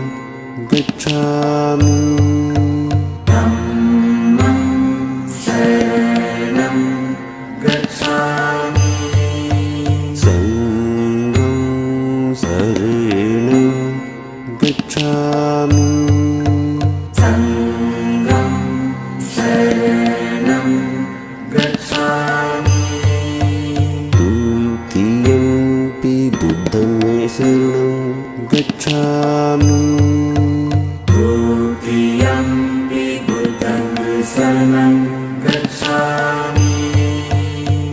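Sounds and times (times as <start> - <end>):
devotional chant singing: 0.0 - 37.9.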